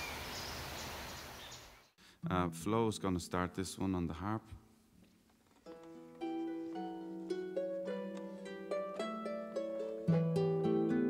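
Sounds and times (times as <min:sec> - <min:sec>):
harp plucked notes: 0:05.6 - 0:11.0.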